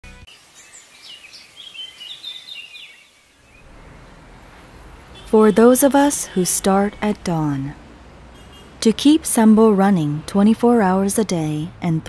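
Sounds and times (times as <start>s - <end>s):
birds chirping: 0.3s - 7.2s.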